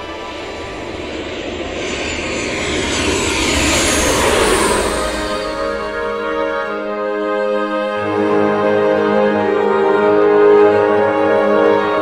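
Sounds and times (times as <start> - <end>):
jet airliner engine noise: 0.0 - 7.2.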